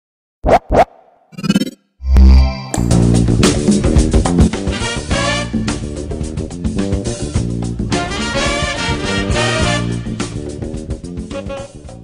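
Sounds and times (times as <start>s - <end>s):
record scratches: 0.4s - 2.6s.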